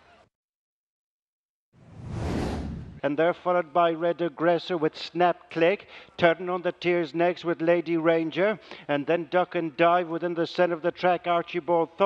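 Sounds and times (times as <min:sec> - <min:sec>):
whoosh sound effect: 0:01.8 - 0:03.0.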